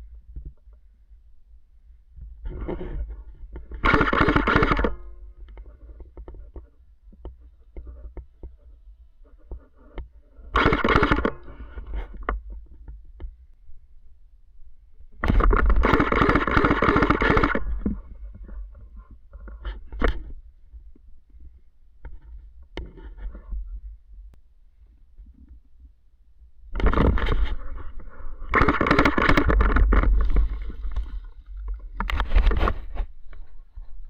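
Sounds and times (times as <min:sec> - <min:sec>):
clothing rustling on microphone: 0:29.7 - 0:34.0.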